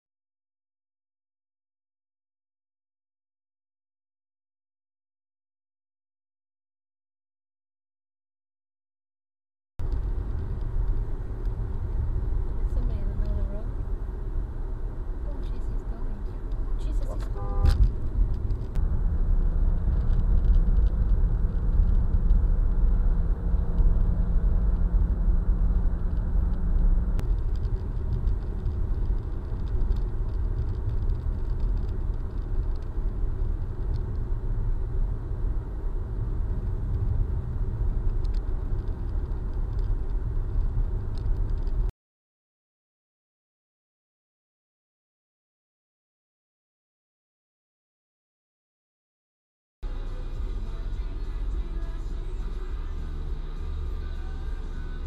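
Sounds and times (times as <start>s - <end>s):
car road and engine rumble: 9.8s - 41.9s, 49.8s - 55.0s.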